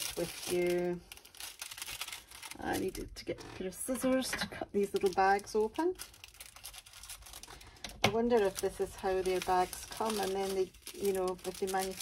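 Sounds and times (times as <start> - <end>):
plastic bags rustling: 0.0 - 12.0.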